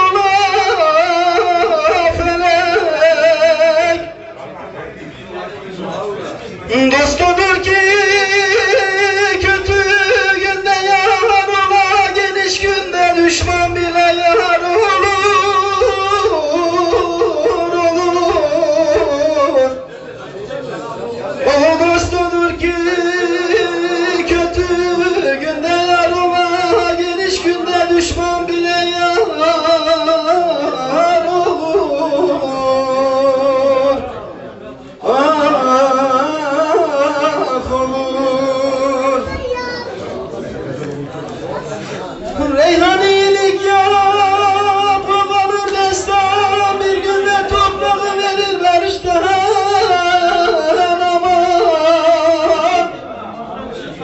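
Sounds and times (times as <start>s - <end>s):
man singing folk song: 0.0s - 4.2s, 6.6s - 19.8s, 21.3s - 34.2s, 35.0s - 39.3s, 42.2s - 53.0s.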